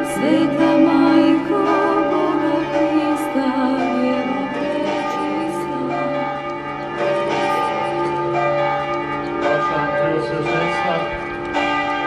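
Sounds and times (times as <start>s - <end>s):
church bells ringing: 0.0s - 12.0s.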